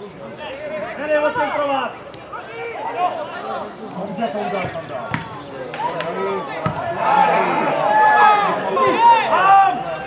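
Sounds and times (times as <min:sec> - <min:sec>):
players shouting: 0:00.3 - 0:10.0
football being kicked: 0:04.6 - 0:05.4, 0:06.6 - 0:06.9.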